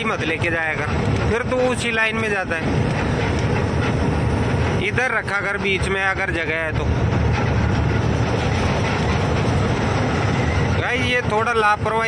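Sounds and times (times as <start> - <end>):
diesel engine drone: 0.0 - 12.0
tyre and road noise: 0.0 - 12.0.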